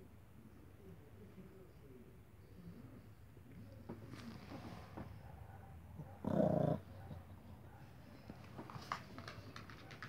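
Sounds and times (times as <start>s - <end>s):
small dog growling: 6.0s - 7.0s.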